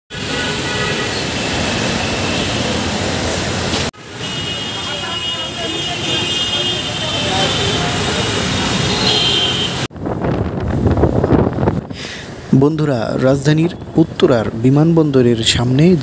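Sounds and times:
city traffic: 0.1 - 16.0
people's voices: 4.5 - 9.0.

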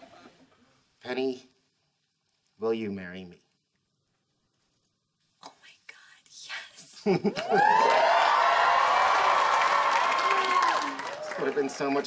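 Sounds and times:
woman whispering oh: 5.4 - 7.0.

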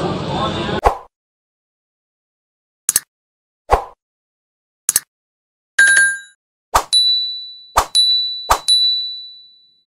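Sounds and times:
bright ding: 5.8 - 6.4, 7.0 - 9.8.

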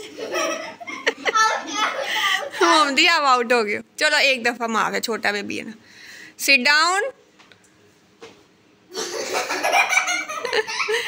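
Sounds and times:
children laughing: 0.0 - 2.7, 8.9 - 11.0.

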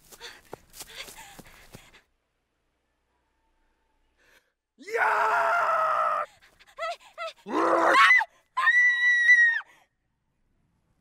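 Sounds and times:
girl screaming: 7.5 - 9.6.

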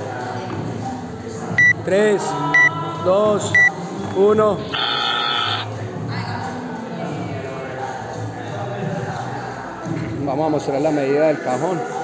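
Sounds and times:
voices: 1.6 - 5.8
electronic timer beep: 4.7 - 5.7.

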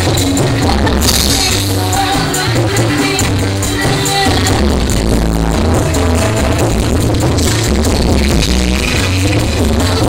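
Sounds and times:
heavy bass line: 0.0 - 10.0
live band playing through speakers: 0.0 - 10.0.

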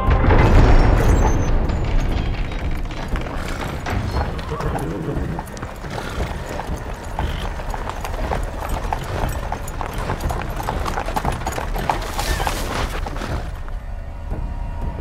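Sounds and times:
horse hooves clip-clopping: 0.2 - 15.0.

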